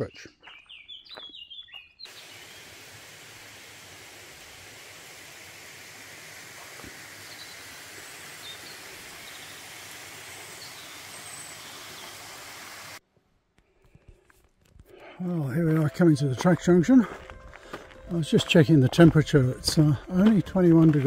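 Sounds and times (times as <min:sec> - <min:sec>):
faint high bird chirps: 0:00.0 - 0:02.6
woodland background noise: 0:00.0 - 0:21.0.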